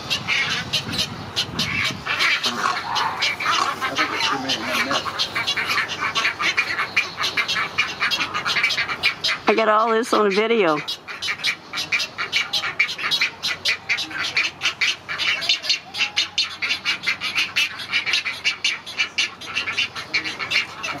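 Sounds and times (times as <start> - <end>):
chicks chattering clicking calls: 0.0 - 21.0.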